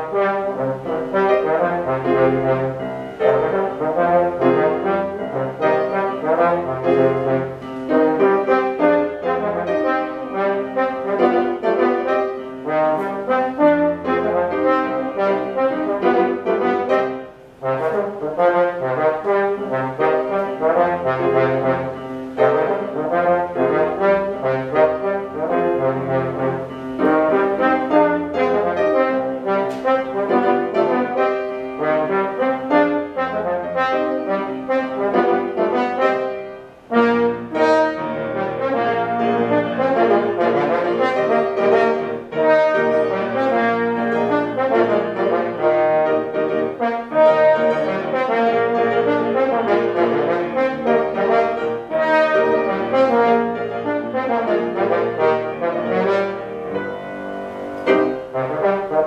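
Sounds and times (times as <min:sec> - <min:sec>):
piano accompaniment: 0:00.0 - 0:59.0
slide trombone melody: 0:00.0 - 0:59.0.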